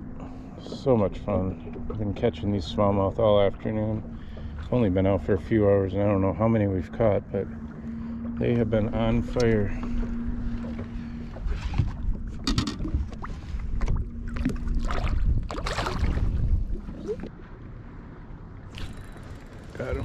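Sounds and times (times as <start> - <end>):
handling knocks and rustles in boat: 0.0 - 17.6
low hum: 0.0 - 20.0
fish splashing into water: 14.3 - 17.3.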